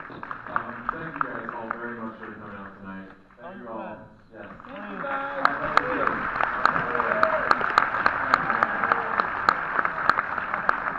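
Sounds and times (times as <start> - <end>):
loud close hand clapping: 0.0 - 2.6, 4.7 - 10.9
audience applauding: 0.0 - 3.0, 4.4 - 10.9.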